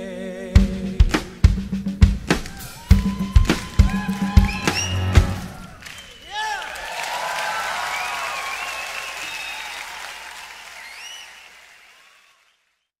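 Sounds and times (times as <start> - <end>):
audience applauding: 2.3 - 12.8
pitched cries from crowd: 2.5 - 11.1.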